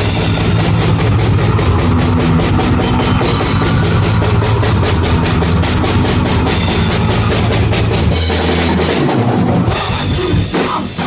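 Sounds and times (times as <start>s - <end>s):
fast drum kit beat: 0.0s - 11.0s
live rock band playing: 0.0s - 11.0s.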